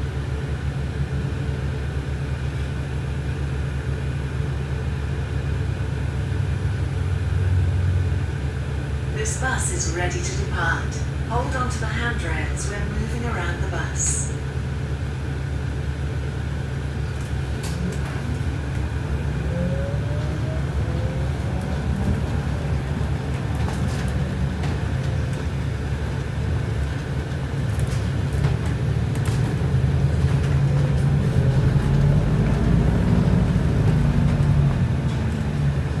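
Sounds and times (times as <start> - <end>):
bus engine and tyres rumbling: 0.0 - 36.0.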